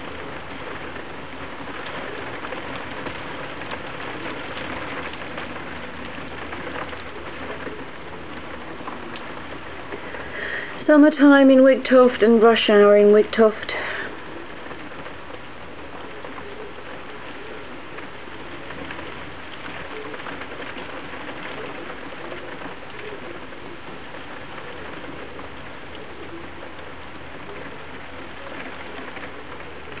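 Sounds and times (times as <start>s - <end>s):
heavy rain: 0.0s - 30.0s.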